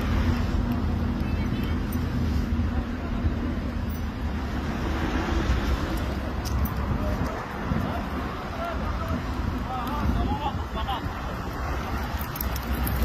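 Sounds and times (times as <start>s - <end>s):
low rumble of road traffic: 0.0s - 13.0s.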